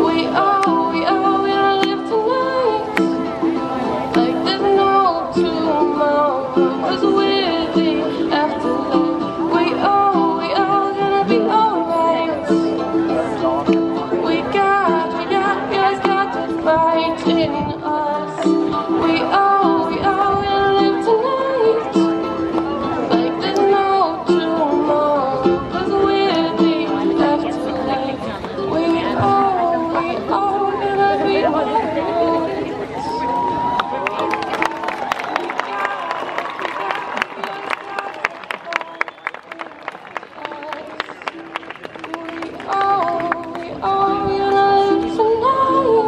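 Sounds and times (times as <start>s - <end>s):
woman singing: 0.0s - 33.4s, 35.6s - 46.0s
strummed ukulele: 0.0s - 46.0s.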